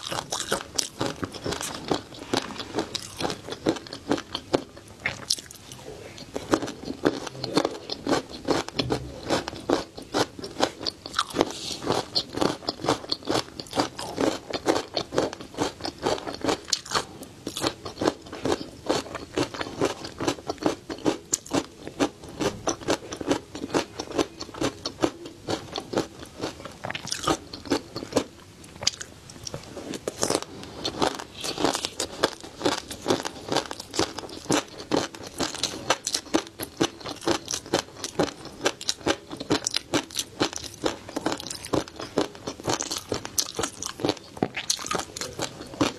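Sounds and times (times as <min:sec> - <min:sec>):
crunchy chewing: 0:00.0 - 0:45.9.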